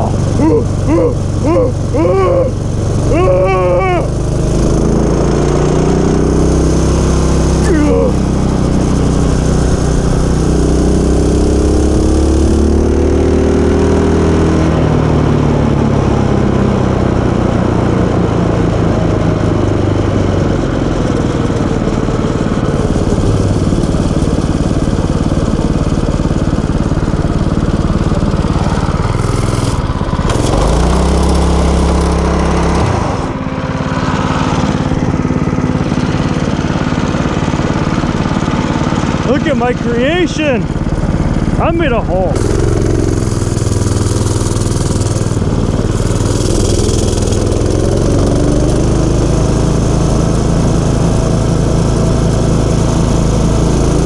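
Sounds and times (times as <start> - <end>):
small gasoline engine running: 0.0 - 54.0.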